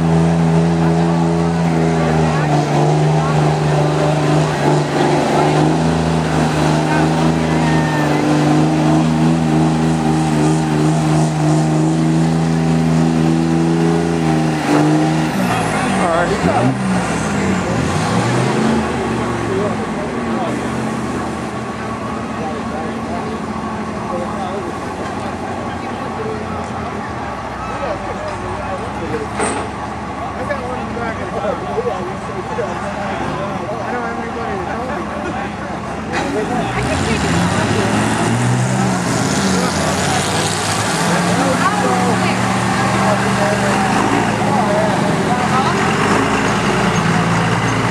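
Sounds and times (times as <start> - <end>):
diesel engine idling and revving: 0.0 - 47.9.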